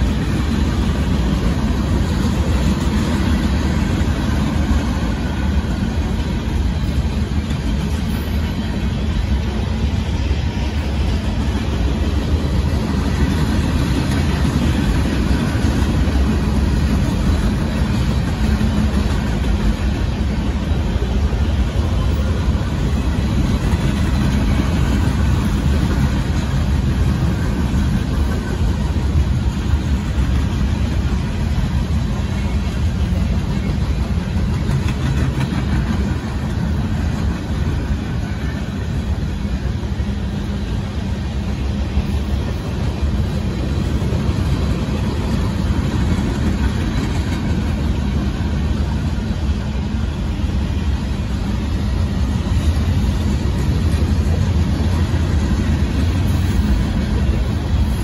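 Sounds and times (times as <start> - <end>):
freight train wheels rumbling on rail: 0.0 - 58.0.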